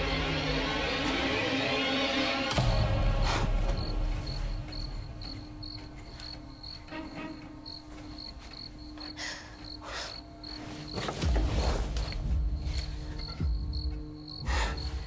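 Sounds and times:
crickets chirping: 2.5s - 15.0s.

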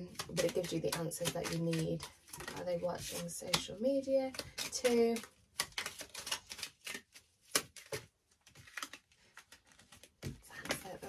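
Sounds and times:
cards shuffling: 0.1s - 11.0s.

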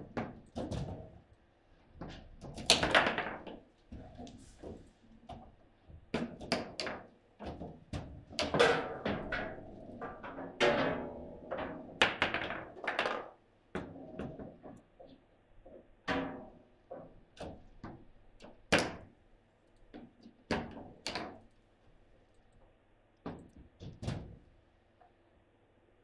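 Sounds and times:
table football ball knocking: 12.0s - 13.3s.

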